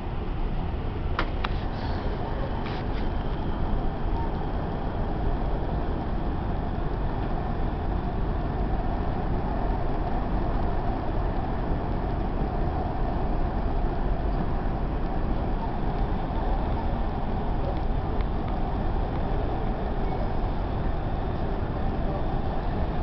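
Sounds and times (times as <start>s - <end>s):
vehicle cabin rumble: 0.6s - 23.0s.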